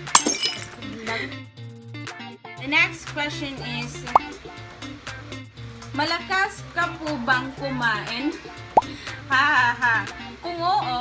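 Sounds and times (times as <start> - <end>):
glass shattering crash: 0.0 - 1.0
background music: 0.0 - 11.0.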